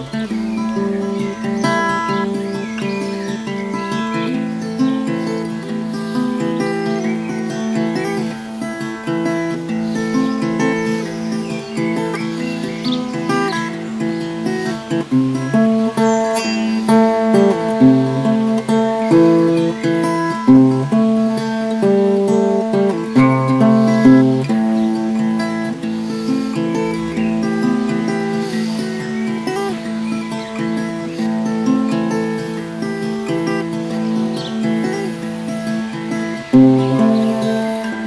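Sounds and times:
acoustic guitar playing: 0:00.0 - 0:38.0.

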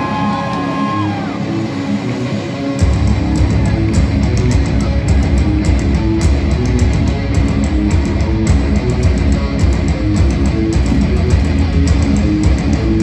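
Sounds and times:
bass guitar: 0:00.0 - 0:13.0
distorted electric guitars: 0:00.0 - 0:13.0
drums with rapid hits: 0:02.8 - 0:13.0.

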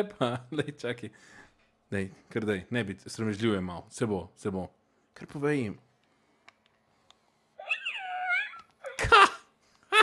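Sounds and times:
toy high-pitched cooing call: 0:07.6 - 0:08.7.

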